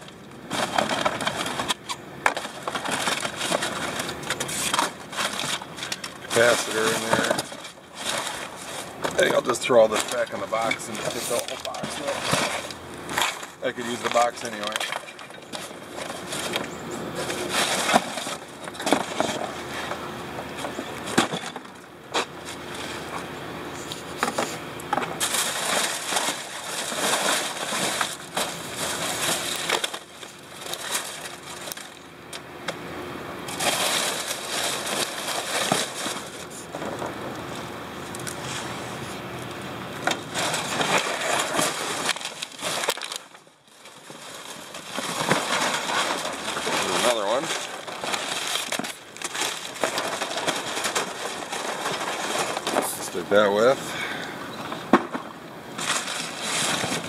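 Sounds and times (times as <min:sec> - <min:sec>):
packing material clicks and knocks: 0:00.0 - 0:23.3, 0:24.1 - 0:32.8, 0:33.5 - 0:37.2, 0:40.0 - 0:53.8, 0:54.7 - 0:57.0
cardboard and plastic bags rustling: 0:00.0 - 0:57.0.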